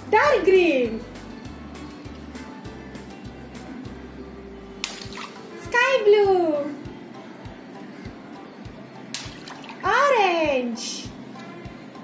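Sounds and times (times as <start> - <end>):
background music: 0.0 - 12.0
water balloon bursting: 4.8 - 5.4, 9.2 - 9.7.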